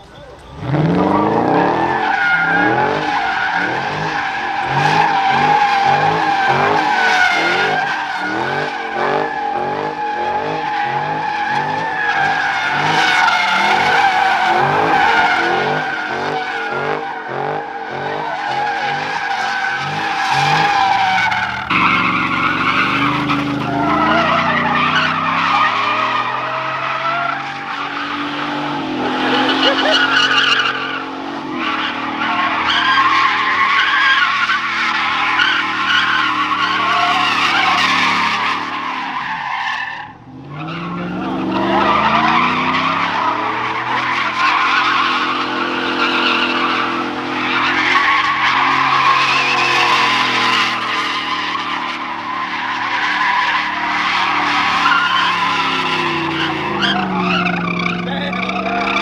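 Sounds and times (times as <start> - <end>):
car engines revving: 0.0 - 59.0
tires squealing: 0.0 - 59.0.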